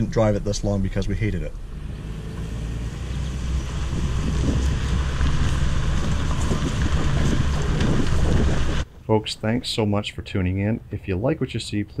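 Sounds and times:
low vehicle rumble: 0:00.0 - 0:08.9
wind buffeting microphone: 0:00.0 - 0:08.9.

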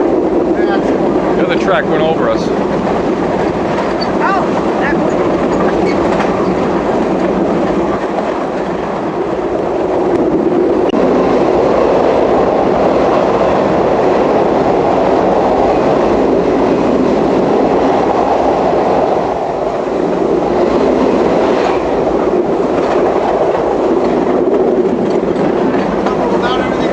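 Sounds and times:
train wheels on rails: 0:00.0 - 0:26.9.

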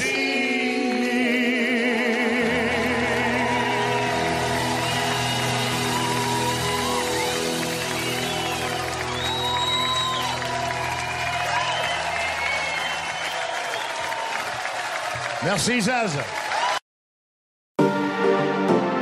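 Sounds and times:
live band sustained chord: 0:02.0 - 0:13.3
audience applauding: 0:02.0 - 0:16.8
audience whistling: 0:02.8 - 0:15.4.

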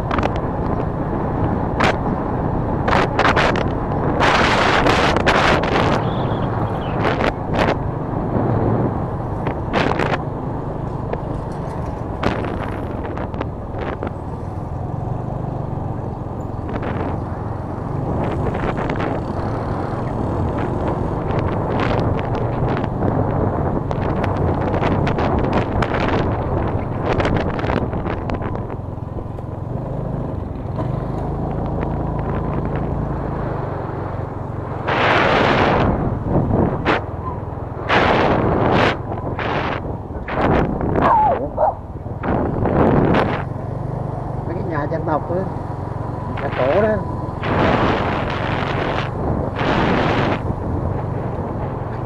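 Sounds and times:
motorcycle engine hum: 0:00.0 - 0:52.0
wind buffeting microphone: 0:00.0 - 0:52.0.

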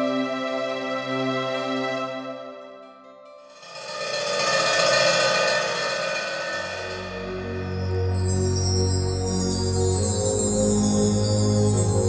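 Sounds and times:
shimmering metallic bell swell: 0:03.3 - 0:12.0.

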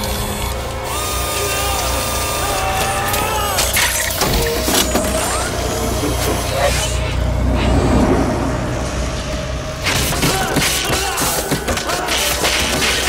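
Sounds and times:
deep rumble: 0:05.6 - 0:10.2.

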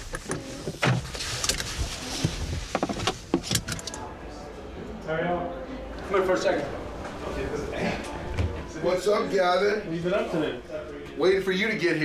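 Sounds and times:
clicks and knocks inside a car: 0:00.0 - 0:03.8
rustling: 0:00.0 - 0:04.0.

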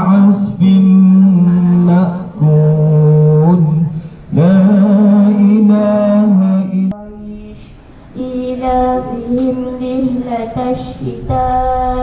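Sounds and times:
melodic chanted recitation: 0:00.0 - 0:12.0.

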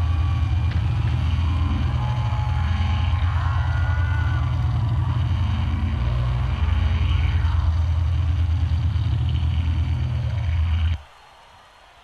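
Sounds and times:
loud low rumbling drone: 0:00.0 - 0:11.0.

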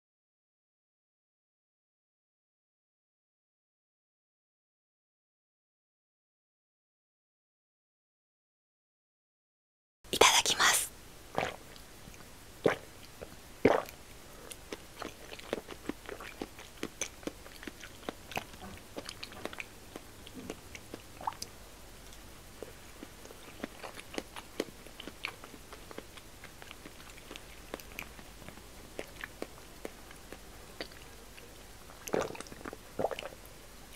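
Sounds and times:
chewing with lip smacks: 0:11.4 - 0:21.5, 0:22.1 - 0:33.4.

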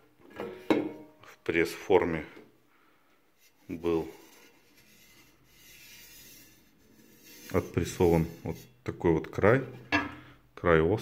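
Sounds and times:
fingertip rubbing metal rim: 0:03.4 - 0:09.0.

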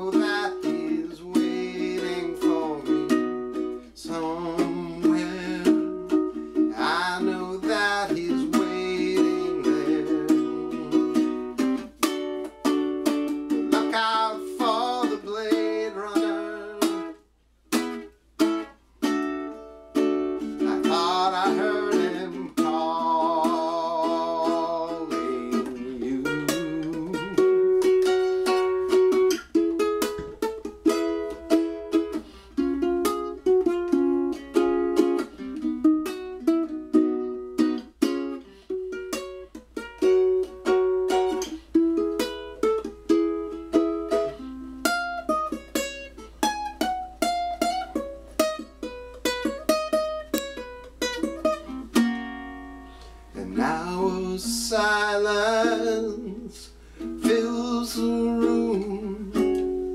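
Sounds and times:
ukulele melody: 0:00.0 - 0:59.9.

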